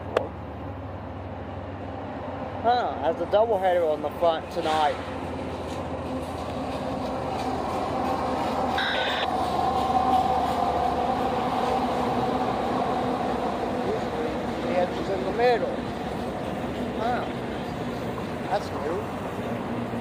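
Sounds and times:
diesel freight train rumbling: 0.0 - 20.0
brief high-pitched tone: 8.8 - 9.3.

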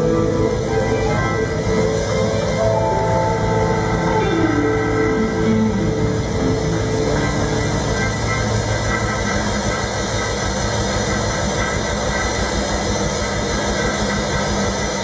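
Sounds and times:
keyboard tones: 0.0 - 8.7
held low bass tones: 0.0 - 10.8
live band droning: 0.0 - 15.0.

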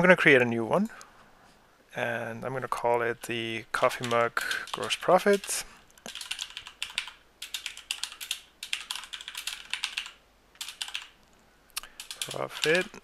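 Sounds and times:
typing on computer keyboard: 3.8 - 11.2, 11.8 - 13.0.

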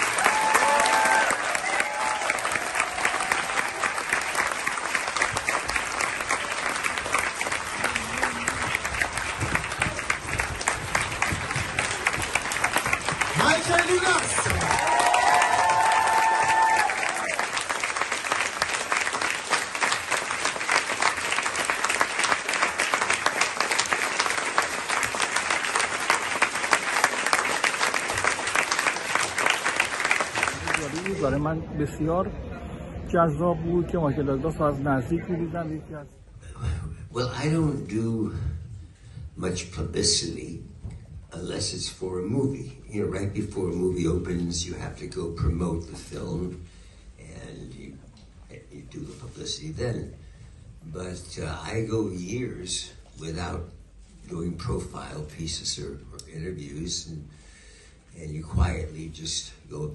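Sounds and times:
audience applauding: 0.0 - 31.5.

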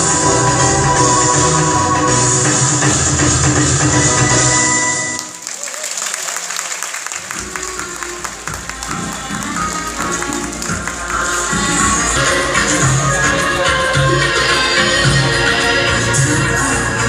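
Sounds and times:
stage music: 0.0 - 17.0
audience applauding: 4.8 - 14.6.

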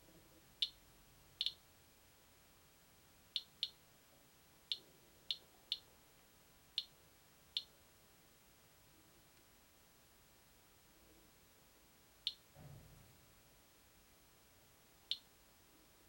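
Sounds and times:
geiger counter clicking: 1.4 - 1.6, 3.4 - 3.8.

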